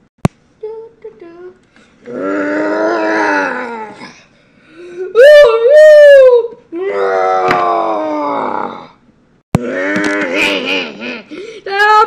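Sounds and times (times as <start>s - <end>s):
loud high cry: 5.1s - 8.8s
person making vocal sound effects: 9.6s - 11.5s.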